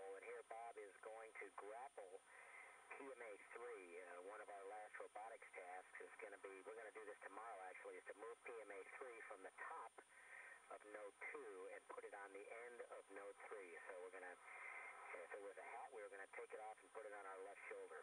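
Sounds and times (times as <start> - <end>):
person talking over radio: 0.0 - 18.0.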